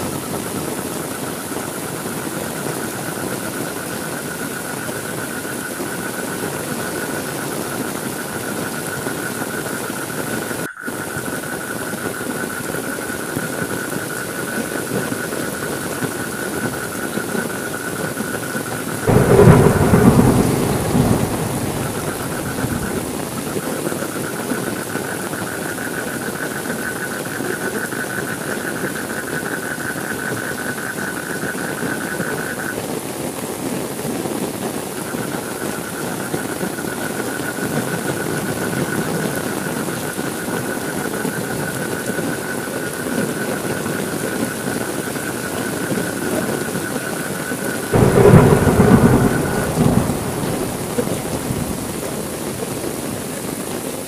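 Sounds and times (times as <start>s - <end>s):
steady rain: 0.0s - 54.0s
thunderclap rumbling: 19.1s - 23.6s, 47.9s - 53.4s.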